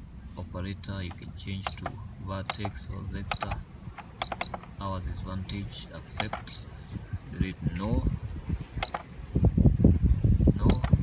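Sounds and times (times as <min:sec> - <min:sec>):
keypad beep with click: 0:01.6 - 0:04.7, 0:06.2 - 0:06.5, 0:08.8 - 0:09.1, 0:10.6 - 0:11.0.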